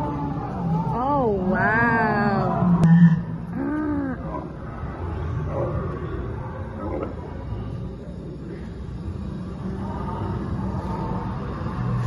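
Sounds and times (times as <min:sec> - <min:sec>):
faint steady tones: 0:00.0 - 0:12.0.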